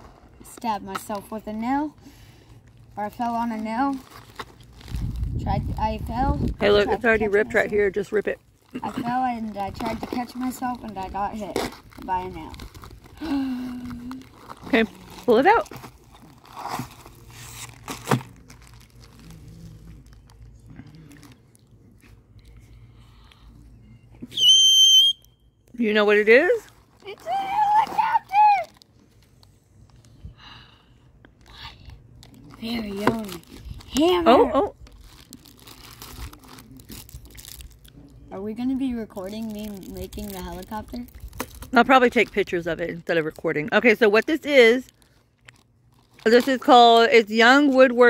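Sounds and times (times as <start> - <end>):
plastic mailer bag crinkling: 3.1 - 5.4, 6.6 - 21.8, 26.6 - 30.0, 32.2 - 42.7, 44.7 - 47.8.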